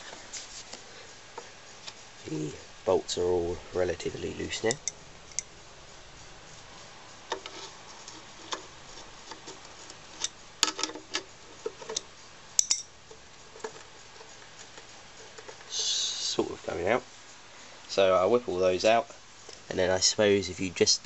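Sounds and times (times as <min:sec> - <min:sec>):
spanner clicking on metal bolts: 0:09.3 - 0:12.9.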